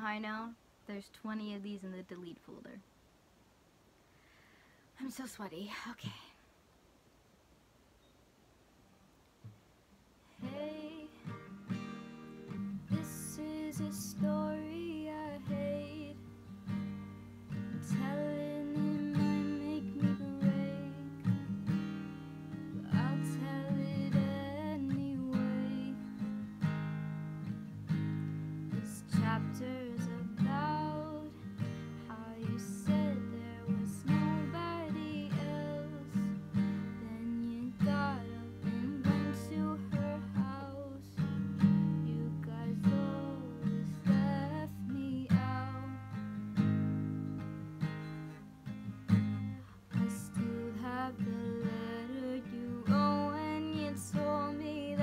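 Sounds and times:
woman singing: 10.3 - 11.6, 12.5 - 16.3, 17.7 - 21.5, 22.7 - 26.4, 28.7 - 46.3, 49.9 - 55.0
acoustic guitar strumming: 10.4 - 55.0.

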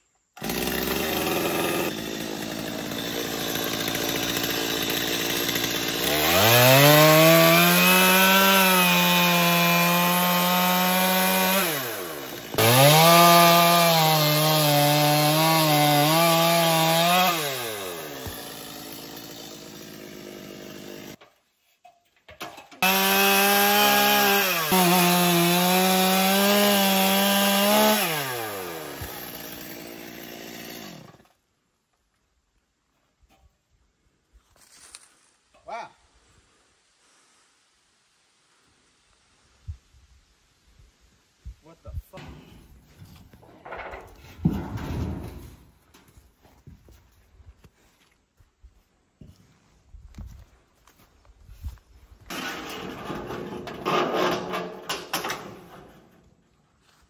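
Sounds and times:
chainsaw cutting wood: 0.3 - 21.2, 22.7 - 31.4, 52.2 - 56.4.

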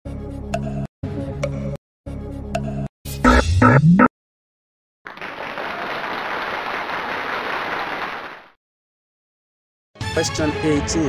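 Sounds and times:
applause: 5.0 - 8.6.

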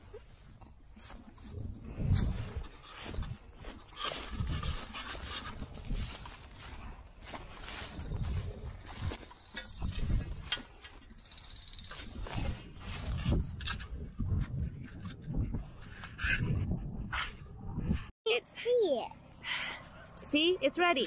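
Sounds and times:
footsteps swishing through grass: 0.9 - 10.9, 11.9 - 13.4.

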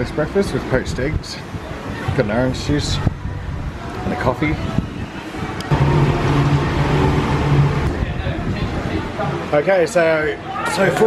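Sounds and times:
vehicle engine running: 5.7 - 9.2.

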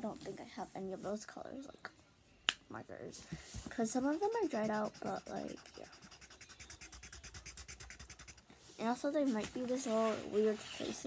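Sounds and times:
coloring strokes on paper: 3.4 - 11.0.

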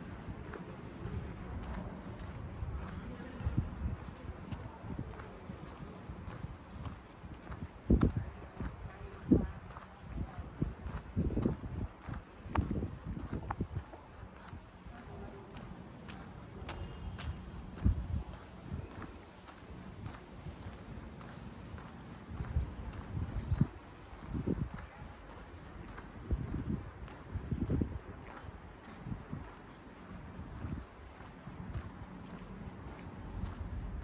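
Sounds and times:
faint outdoor hiss: 0.0 - 34.0
wind buffeting microphone: 0.0 - 34.0.

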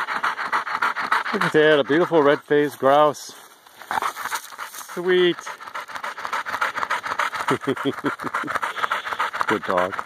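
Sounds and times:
dog panting fast: 0.0 - 10.0
man chuckling low: 7.4 - 9.3.

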